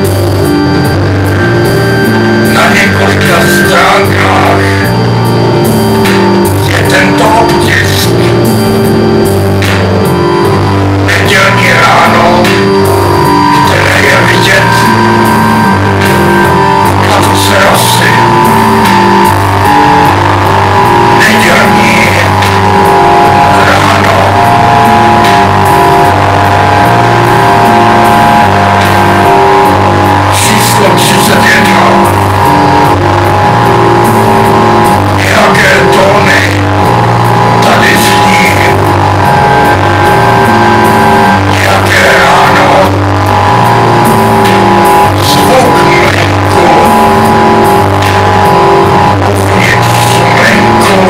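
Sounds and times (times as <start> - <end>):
live band droning chords: 0.0 - 51.0
low bass line: 0.0 - 51.0.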